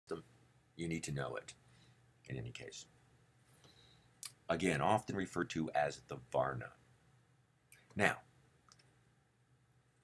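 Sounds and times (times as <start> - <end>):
man speaking: 0.8 - 1.6, 2.3 - 2.9, 4.2 - 6.8, 7.9 - 8.3
faint click: 8.7 - 8.9.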